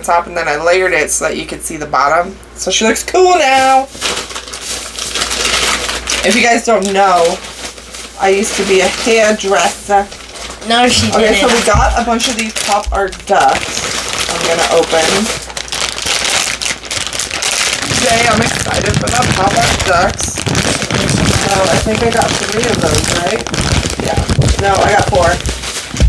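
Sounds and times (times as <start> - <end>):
plastic packaging crinkling: 3.2 - 26.0
rustling and crackling handling noise: 3.5 - 26.0.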